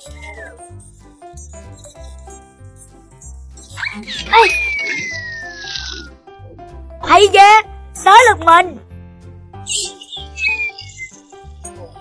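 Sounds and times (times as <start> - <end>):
children's background music: 0.0 - 12.0
loud cartoon character cry: 4.1 - 5.7.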